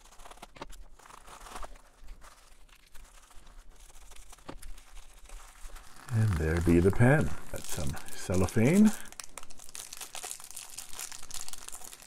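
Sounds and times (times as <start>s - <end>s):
plastic packaging crinkling: 0.0s - 12.0s
scissors cutting plastic mailer: 5.9s - 8.8s.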